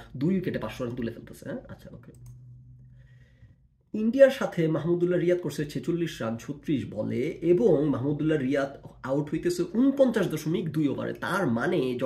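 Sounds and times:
man talking: 0:00.0 - 0:02.2, 0:03.9 - 0:12.0
faint low hum: 0:00.0 - 0:12.0
soft clicks: 0:02.0 - 0:02.9.

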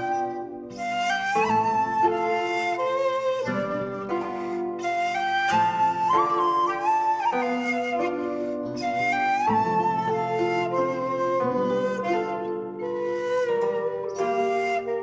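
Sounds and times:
pan flute melody: 0:00.0 - 0:15.0.

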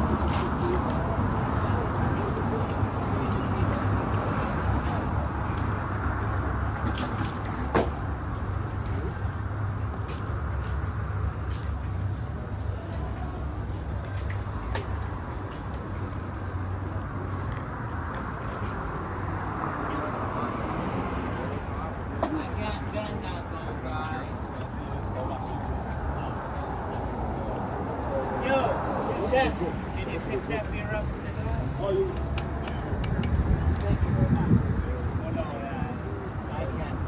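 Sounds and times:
low traffic rumble: 0:00.0 - 0:37.0.

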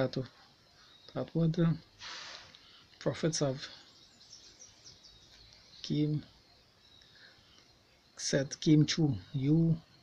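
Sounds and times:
man speaking: 0:00.0 - 0:00.4, 0:01.1 - 0:01.9, 0:03.0 - 0:03.8, 0:05.8 - 0:06.4, 0:08.2 - 0:10.0
low background noise: 0:00.0 - 0:10.0
high bird chirps: 0:03.8 - 0:08.2.

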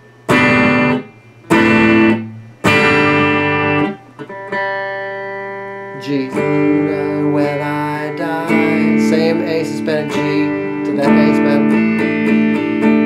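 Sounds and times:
electric guitar chords: 0:00.0 - 0:13.0.

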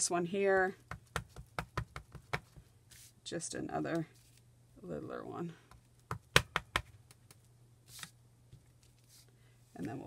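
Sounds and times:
ink pad tapping and clicking: 0:00.9 - 0:02.6, 0:06.1 - 0:07.4.

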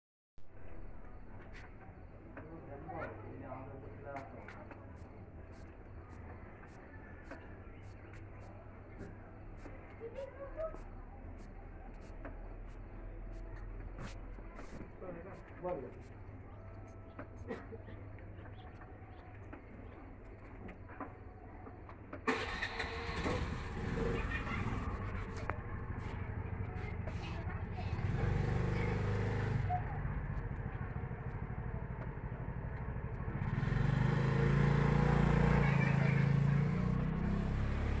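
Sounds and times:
engine running with low rumble: 0:00.5 - 0:38.0.

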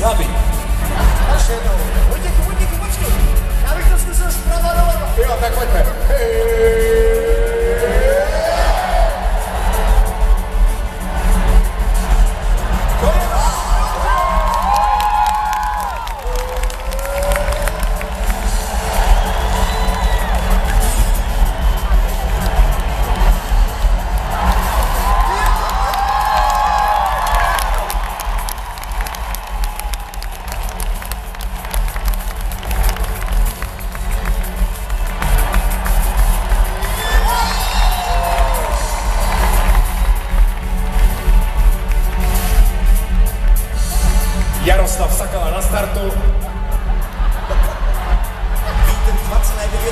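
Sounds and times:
crowd cheering and shouting: 0:00.0 - 0:49.9.

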